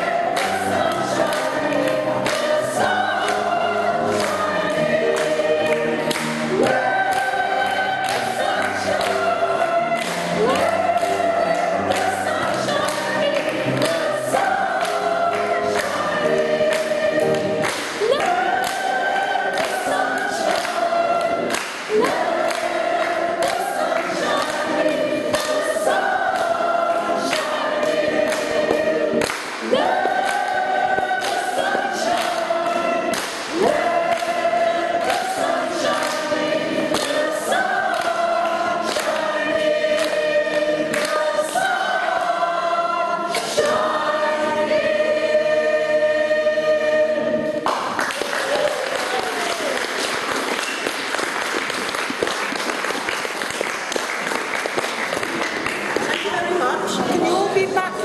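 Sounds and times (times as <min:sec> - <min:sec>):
hands clapping along: 0:00.0 - 0:45.0, 0:47.6 - 0:57.4
choir singing: 0:00.0 - 0:49.8.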